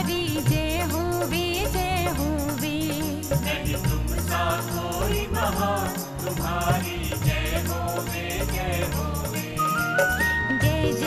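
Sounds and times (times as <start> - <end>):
devotional song over steady beat: 0.0 - 11.0.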